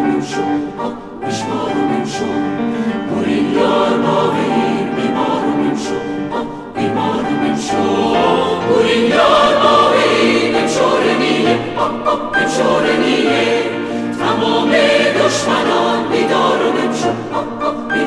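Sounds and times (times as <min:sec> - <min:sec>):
choir singing held chords: 0:00.0 - 0:18.0.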